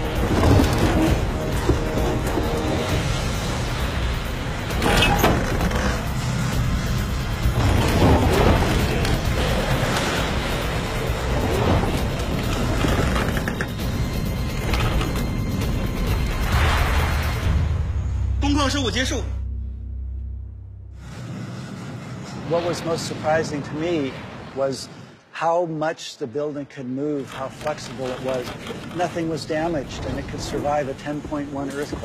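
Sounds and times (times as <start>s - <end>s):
bricks and earth clattering: 0.0s - 3.5s, 7.4s - 16.1s
music: 0.0s - 21.4s.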